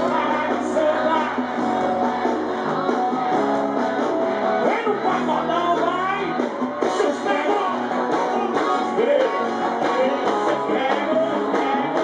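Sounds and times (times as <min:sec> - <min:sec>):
person singing: 0:00.0 - 0:03.3, 0:04.6 - 0:12.0
live band music: 0:00.0 - 0:12.0
strummed guitar: 0:00.0 - 0:12.0.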